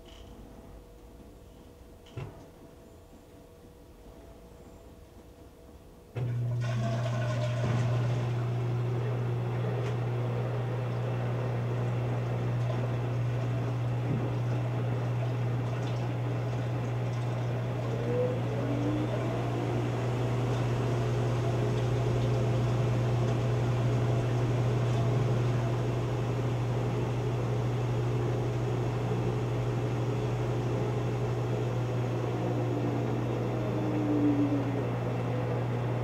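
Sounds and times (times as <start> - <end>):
washing machine hum: 0.0 - 36.0.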